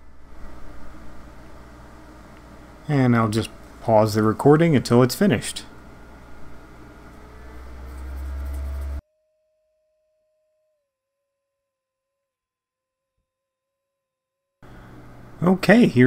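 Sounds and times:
room hum: 0.0s - 9.0s, 14.6s - 16.0s.

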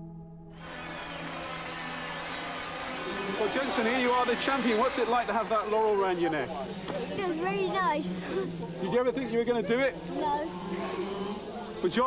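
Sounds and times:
kart engine buzzing: 0.7s - 12.0s.

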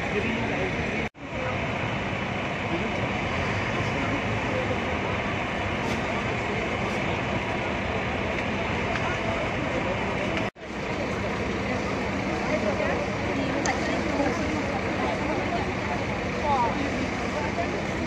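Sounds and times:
crowd chatter: 0.0s - 18.0s
engine and traffic noise: 0.0s - 18.0s.

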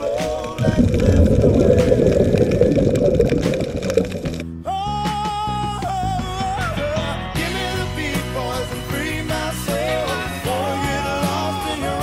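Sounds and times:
music: 0.0s - 3.0s, 3.8s - 12.0s
underwater bubbles rushing: 0.3s - 4.4s.

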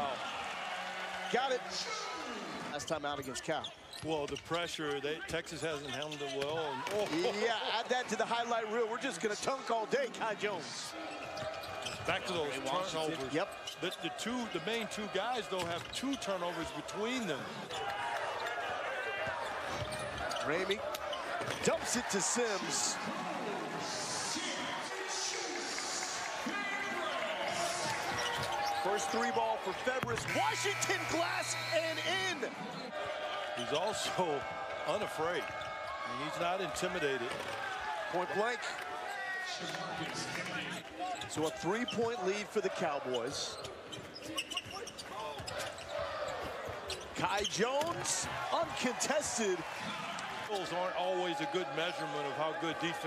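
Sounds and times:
arena crowd noise: 0.0s - 53.0s.

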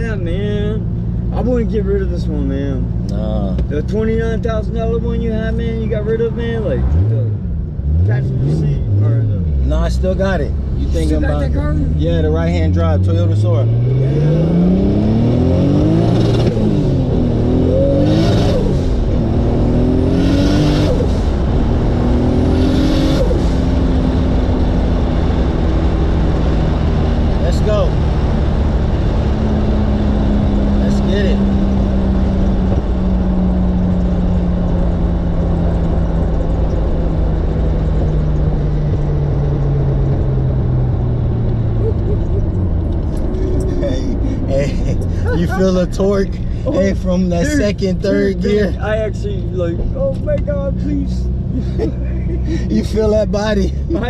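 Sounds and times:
car engine revving through gears: 2.7s - 54.0s.

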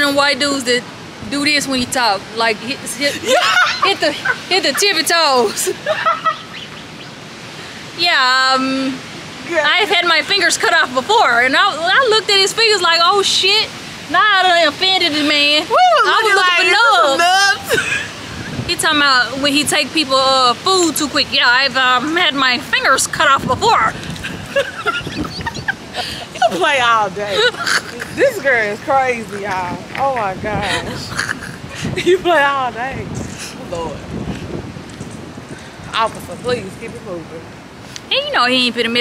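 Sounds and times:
wind noise on microphone: 0.0s - 39.0s
woman laughing: 2.8s - 6.6s, 15.8s - 18.7s, 23.9s - 28.7s, 30.5s - 32.5s.

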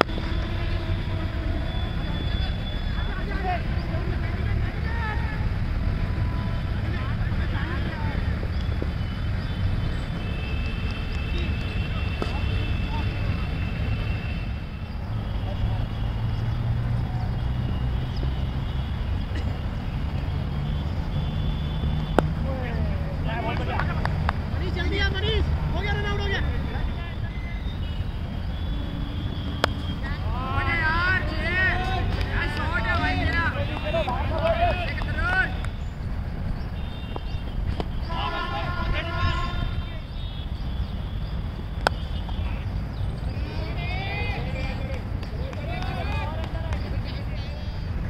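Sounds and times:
players shouting and calling: 0.0s - 48.0s
bat hitting ball: 29.6s - 29.8s.

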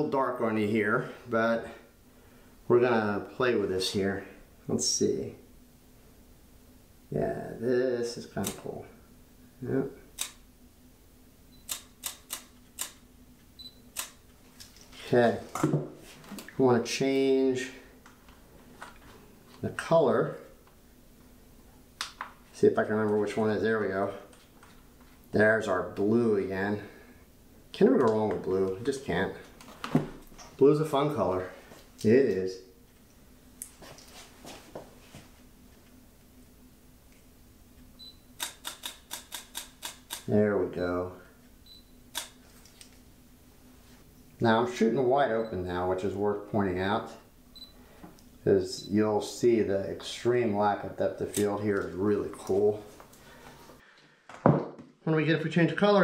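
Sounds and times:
camera shutter clicks: 38.4s - 40.3s.

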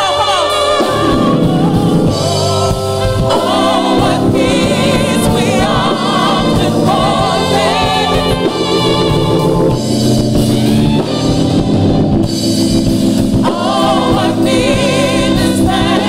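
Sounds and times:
church band playing: 0.0s - 16.0s
singers with vibrato: 0.0s - 16.0s.

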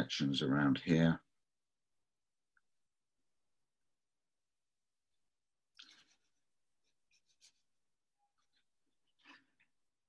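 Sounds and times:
paintbrush scratching on paper: 6.1s - 7.8s.

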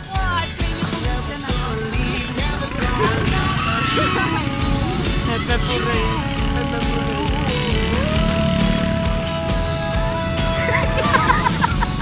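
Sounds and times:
music with gliding melody: 0.0s - 12.0s
road traffic rumble: 0.0s - 12.0s.

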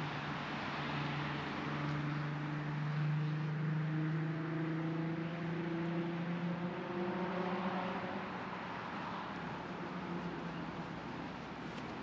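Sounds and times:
tyre and road noise hiss: 8.9s - 12.0s.

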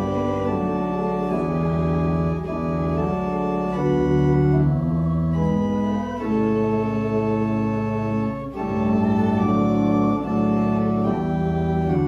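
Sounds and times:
church organ playing a hymn: 0.0s - 12.0s.

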